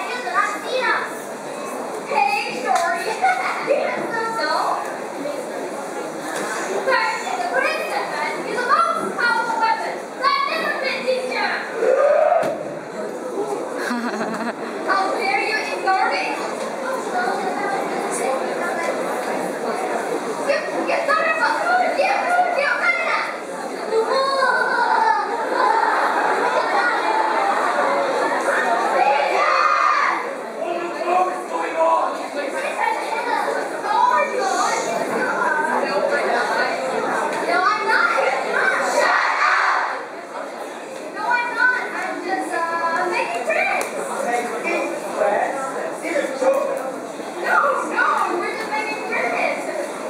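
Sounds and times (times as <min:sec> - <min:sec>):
children speaking in unison: 0:00.0 - 0:05.5, 0:06.2 - 0:12.4, 0:13.3 - 0:45.3, 0:47.3 - 0:50.0.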